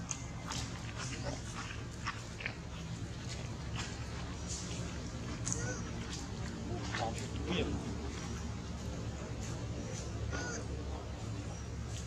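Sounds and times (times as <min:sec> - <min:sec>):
low background hum: 0:00.0 - 0:12.0
monkeys calling: 0:05.4 - 0:07.9, 0:10.2 - 0:11.6.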